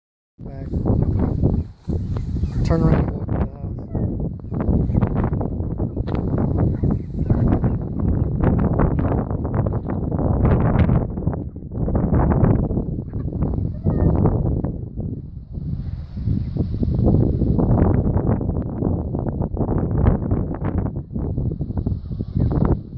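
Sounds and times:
wind buffeting microphone: 0:00.4 - 0:22.9
chickens clucking: 0:06.7 - 0:08.3, 0:13.0 - 0:14.1.

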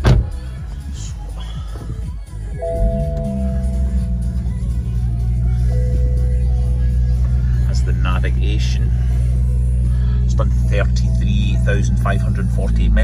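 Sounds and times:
car engine starting and idling: 0:00.0 - 0:13.0
two-note electronic chime: 0:02.6 - 0:04.4.

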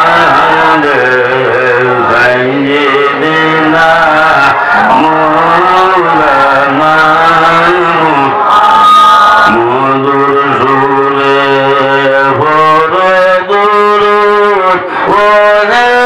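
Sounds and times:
man singing a devotional chant: 0:00.0 - 0:08.4, 0:09.5 - 0:16.0.

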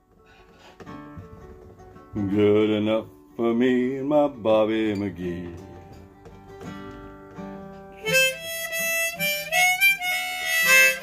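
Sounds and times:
acoustic guitar strummed chords: 0:00.0 - 0:11.0
guitar notes picked: 0:04.8 - 0:11.0.

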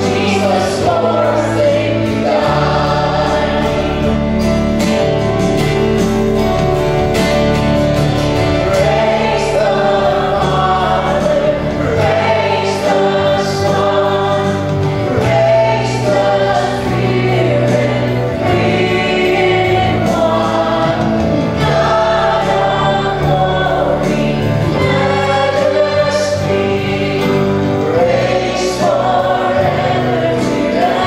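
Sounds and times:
acoustic guitar: 0:00.0 - 0:31.0.

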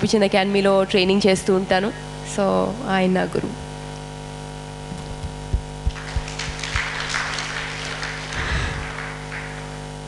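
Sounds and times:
electrical mains hum: 0:00.0 - 0:10.0
soft low thumps: 0:04.9 - 0:06.6
audience applause: 0:05.5 - 0:10.0.

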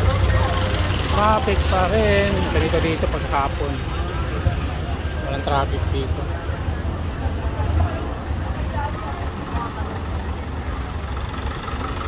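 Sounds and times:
crowd chatter: 0:00.0 - 0:12.0
vehicle engines idling: 0:00.0 - 0:12.0.

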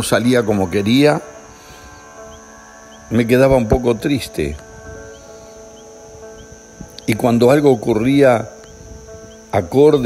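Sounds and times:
crickets chirring: 0:00.0 - 0:10.0
soft background music: 0:00.0 - 0:10.0.

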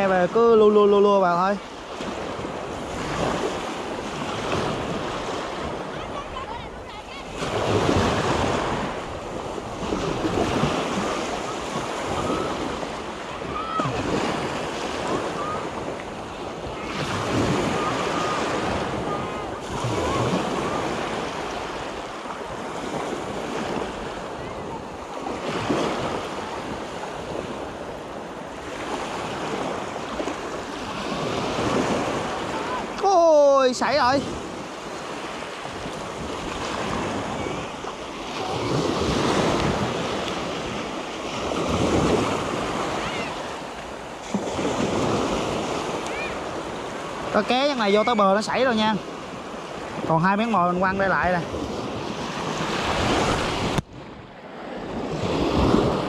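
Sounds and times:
small waves washing on sand: 0:00.0 - 0:56.0
wind on microphone: 0:01.8 - 0:33.1, 0:35.6 - 0:56.0.

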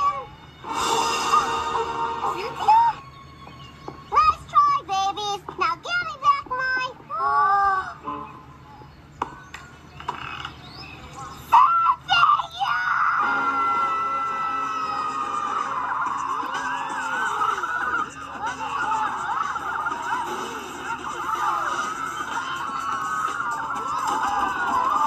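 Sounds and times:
film music: 0:00.0 - 0:03.6
cartoon child shrieking: 0:11.5 - 0:19.5.

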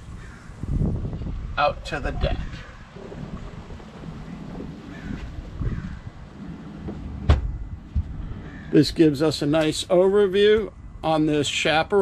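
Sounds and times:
wind buffeting microphone: 0:00.0 - 0:09.2.

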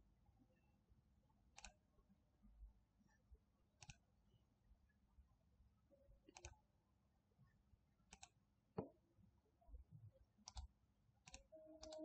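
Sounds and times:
faint computer mouse clicks: 0:01.6 - 0:01.8, 0:03.8 - 0:04.0, 0:06.3 - 0:06.6, 0:08.1 - 0:08.9, 0:10.4 - 0:12.0.

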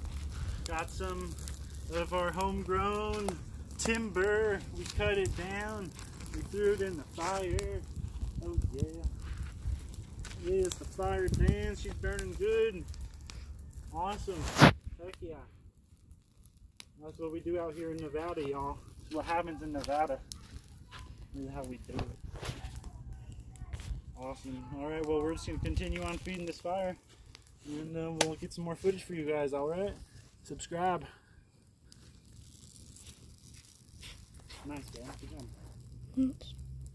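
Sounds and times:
fire snapping: 0:00.0 - 0:36.9
wood fire crackling: 0:00.0 - 0:36.9.

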